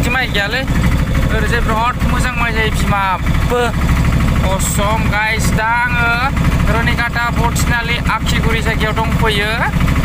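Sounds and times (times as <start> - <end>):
vehicle engine running: 0.0 - 10.0.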